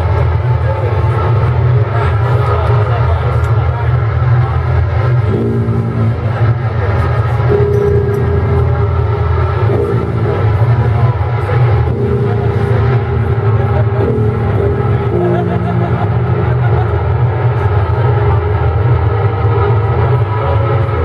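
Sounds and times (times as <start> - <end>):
distorted metal band playing: 0.0 - 21.0.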